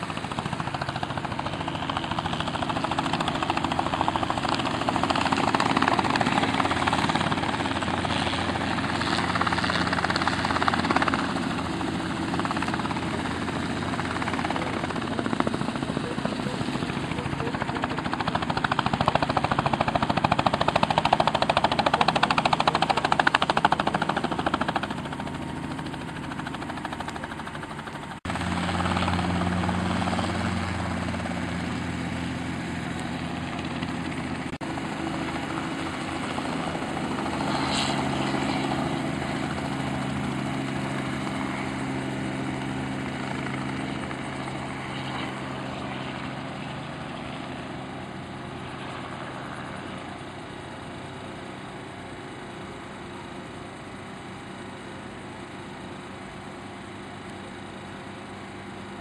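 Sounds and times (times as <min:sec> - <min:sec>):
helicopter rotor chop and engine: 0:00.0 - 0:59.0.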